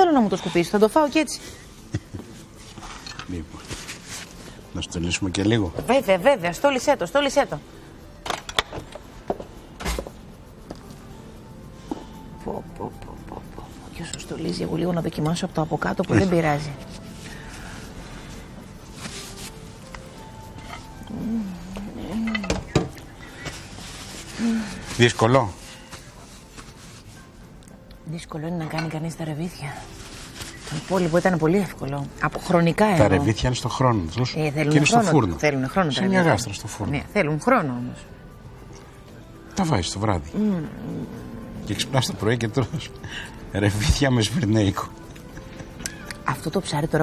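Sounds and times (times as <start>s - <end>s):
woman humming: 12.4s - 14.0s, 21.0s - 22.6s, 40.4s - 41.5s.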